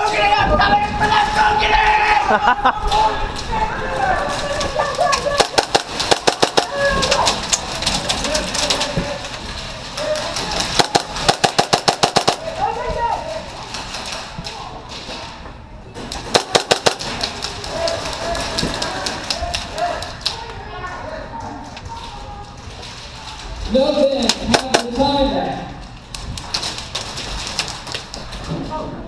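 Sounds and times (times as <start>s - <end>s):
distant shouting voices: 0.0s - 13.6s
airsoft gun rapid fire bursts: 5.3s - 7.0s, 10.6s - 12.6s, 16.3s - 17.5s, 24.3s - 25.0s.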